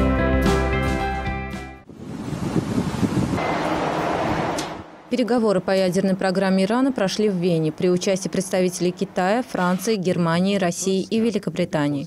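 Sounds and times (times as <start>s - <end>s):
background music: 0.0s - 1.8s
rushing whoosh: 1.9s - 5.2s.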